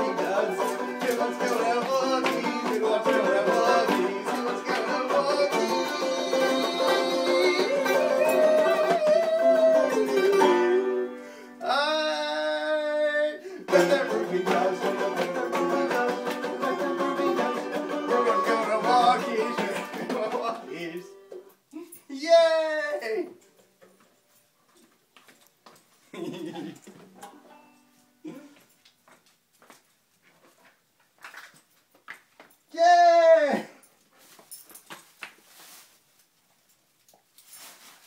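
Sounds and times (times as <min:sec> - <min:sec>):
banjo picked rapidly: 0:00.0 - 0:11.0, 0:13.7 - 0:20.7.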